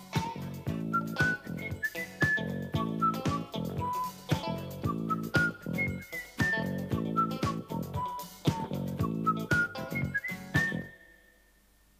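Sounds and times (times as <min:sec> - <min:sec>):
high whistled melody: 0:00.0 - 0:11.6.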